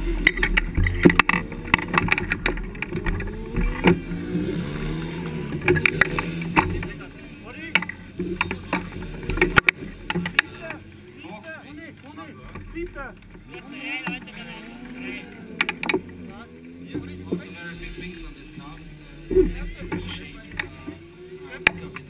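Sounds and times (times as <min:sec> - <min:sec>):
harness buckles clicking: 0:00.0 - 0:07.1, 0:12.4 - 0:18.1
people talking: 0:02.9 - 0:05.2, 0:06.6 - 0:22.0.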